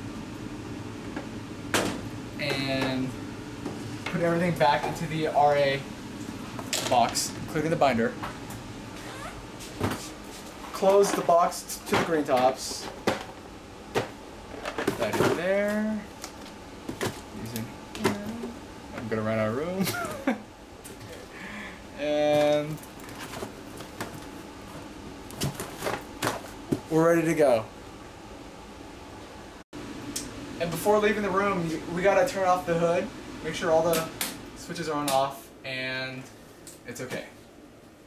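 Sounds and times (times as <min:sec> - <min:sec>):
person humming: 0:18.0 - 0:18.6.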